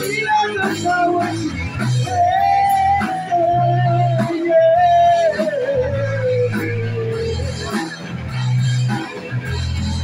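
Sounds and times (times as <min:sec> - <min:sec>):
bass guitar: 0:00.0 - 0:10.0
drums: 0:00.0 - 0:10.0.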